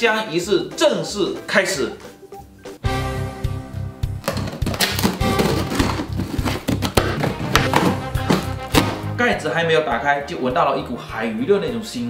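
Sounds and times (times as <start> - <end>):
background music with beat: 0.3 - 12.0.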